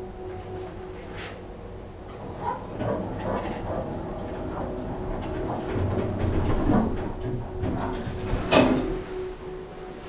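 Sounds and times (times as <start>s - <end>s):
lift doors sliding shut: 2.1s - 9.7s
door motor humming: 2.2s - 9.4s.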